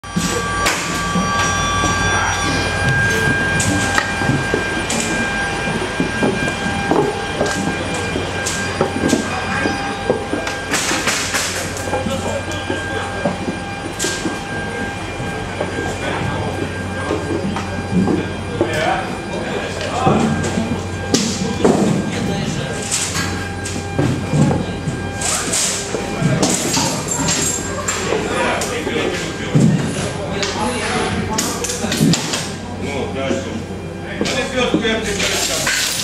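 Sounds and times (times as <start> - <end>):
high whine: 0.0 - 36.0
machinery hum: 0.0 - 36.0.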